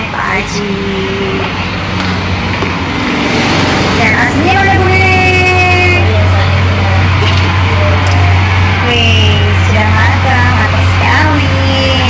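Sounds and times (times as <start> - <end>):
loud mechanical running noise: 0.0 - 12.0
low hum: 1.1 - 12.0.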